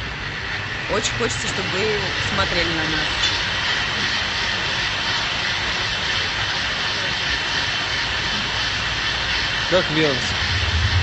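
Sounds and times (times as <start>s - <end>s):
indoor public space din: 0.0s - 11.0s.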